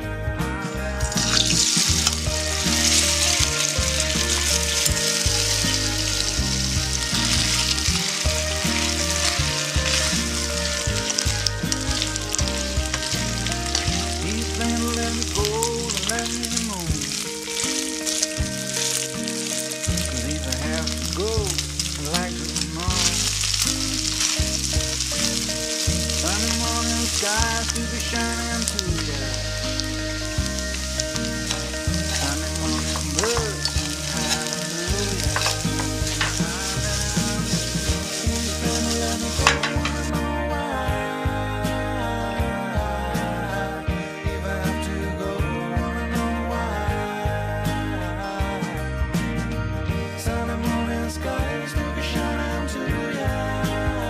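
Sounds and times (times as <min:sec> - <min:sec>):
background music: 0:00.0 - 0:54.0
meat sizzling in hot oil: 0:00.9 - 0:40.3.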